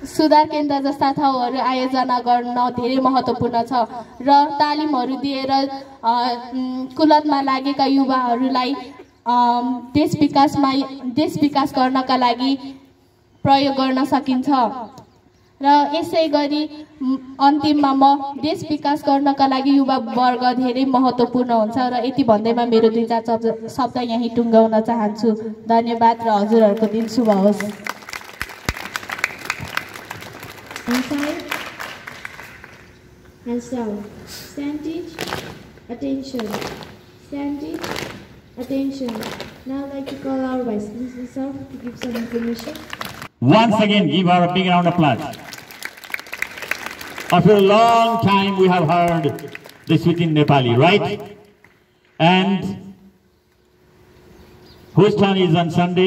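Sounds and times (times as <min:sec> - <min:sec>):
faint steady hum: 0:00.0 - 0:56.0
children applauding: 0:26.8 - 0:32.9, 0:42.2 - 0:43.3, 0:45.2 - 0:50.4
man speaking into a microphone: 0:43.4 - 0:45.4, 0:47.3 - 0:51.3, 0:52.2 - 0:52.9, 0:55.0 - 0:56.0.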